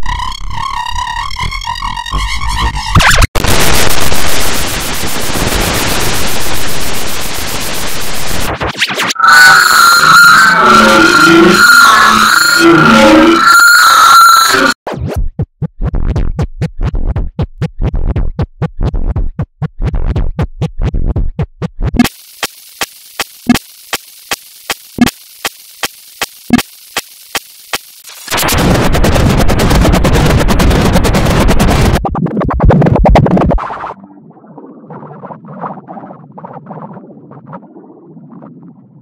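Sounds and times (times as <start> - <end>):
distorted high whine: 0.0 - 14.8, 22.0 - 34.1.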